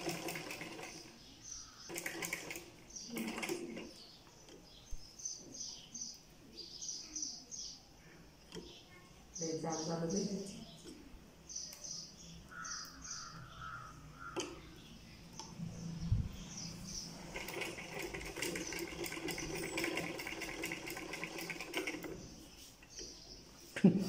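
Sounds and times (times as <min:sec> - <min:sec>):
sewing machine stitching: 0:00.0 - 0:01.1, 0:01.9 - 0:04.0, 0:17.2 - 0:22.2.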